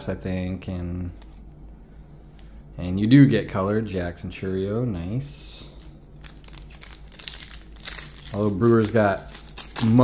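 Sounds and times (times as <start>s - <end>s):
foil wrapper crinkling and tearing: 5.8s - 10.0s.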